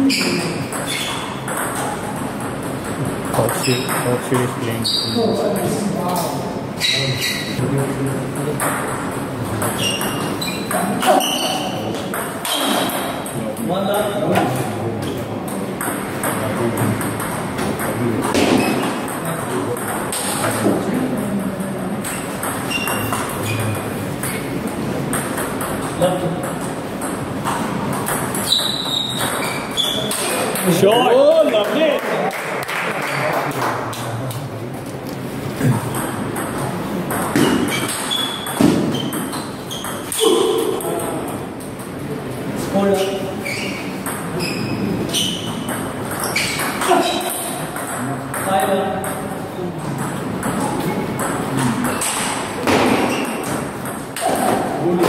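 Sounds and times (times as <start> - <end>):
table tennis balls clicking: 0.0 - 4.6, 14.5 - 30.8, 35.7 - 42.1, 45.0 - 54.7
large hall noise: 0.0 - 55.0.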